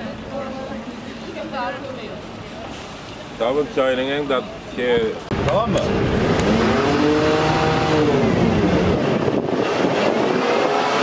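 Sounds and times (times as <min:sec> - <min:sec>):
motor vehicle engine running: 0:05.2 - 0:10.4.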